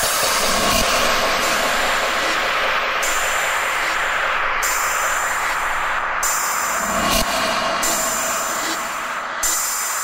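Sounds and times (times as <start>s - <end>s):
low steady drone: 0.0s - 9.8s.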